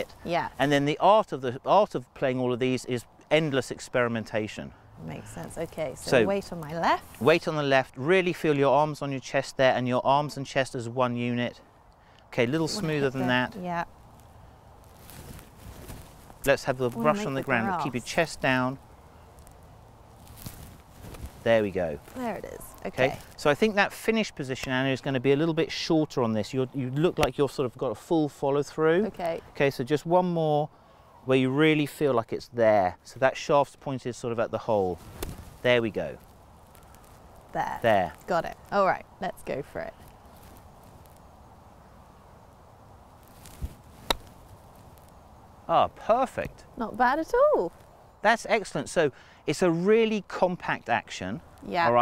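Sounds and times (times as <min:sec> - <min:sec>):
faint outdoor ambience: 0:00.0 - 0:52.0
golf club swish: 0:43.3 - 0:44.4
golf club striking ball: 0:44.1 - 0:44.3.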